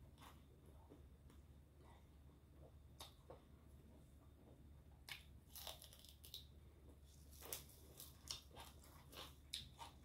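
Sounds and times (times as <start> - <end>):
crisp chewing crunches: 5.1 - 6.5, 7.1 - 10.0.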